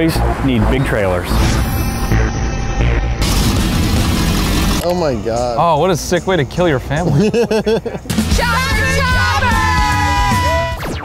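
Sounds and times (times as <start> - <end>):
engine running loudly: 1.3 - 4.9.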